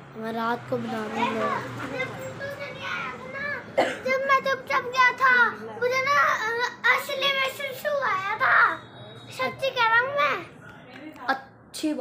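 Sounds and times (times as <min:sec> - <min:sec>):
child talking in a high voice: 0:00.2 - 0:10.5.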